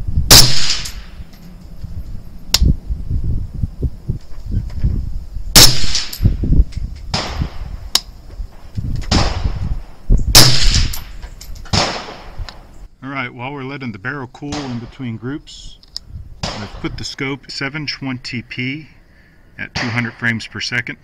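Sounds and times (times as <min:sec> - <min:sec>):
rifle shots echoing: 0:00.3 - 0:01.3, 0:05.6 - 0:06.3, 0:09.1 - 0:09.6, 0:10.4 - 0:12.4, 0:14.5 - 0:15.0, 0:16.4 - 0:16.9, 0:19.8 - 0:20.3.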